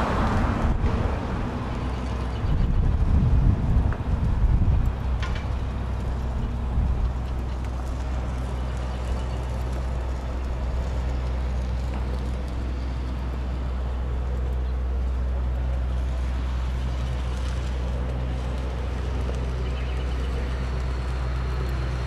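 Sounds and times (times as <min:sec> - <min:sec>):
street ambience: 0:00.0 - 0:22.0
vehicle engine idling: 0:00.0 - 0:22.0.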